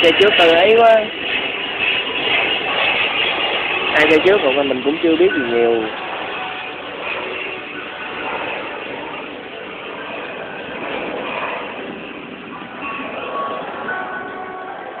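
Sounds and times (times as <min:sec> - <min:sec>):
steady vehicle noise: 0:00.0 - 0:15.0.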